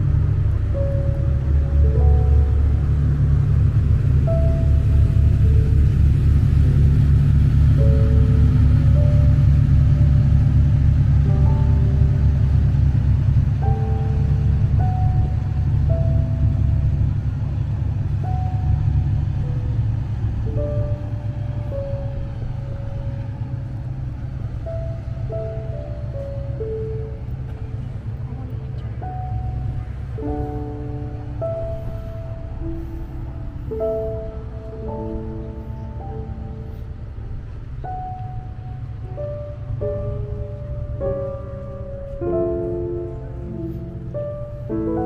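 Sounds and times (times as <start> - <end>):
boat engine rumbling: 0.0 - 45.0
slow piano melody: 0.0 - 45.0.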